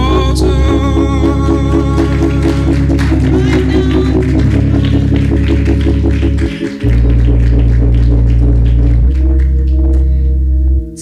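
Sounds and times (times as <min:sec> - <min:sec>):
held bass note: 0:00.0 - 0:11.0
sustained keyboard chords: 0:00.0 - 0:11.0.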